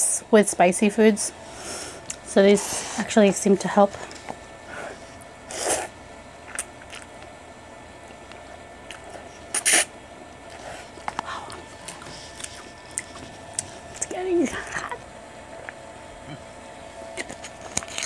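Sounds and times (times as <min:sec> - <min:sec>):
chewing: 0:06.4 - 0:07.2, 0:10.4 - 0:15.0
person slurping noodles: 0:09.5 - 0:09.9.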